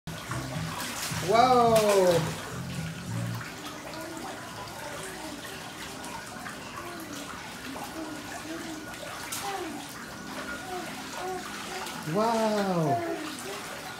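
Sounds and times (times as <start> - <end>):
bathtub jets churning water: 0.1 - 13.9.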